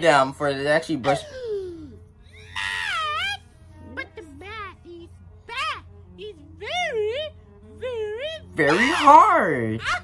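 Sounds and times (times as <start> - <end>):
cartoon voice screaming: 8.1 - 10.0.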